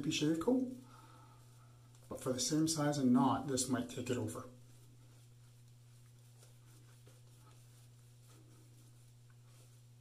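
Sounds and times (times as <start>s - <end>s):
steady low hum: 0.0s - 10.0s
shaving brush strokes on face: 1.4s - 10.0s.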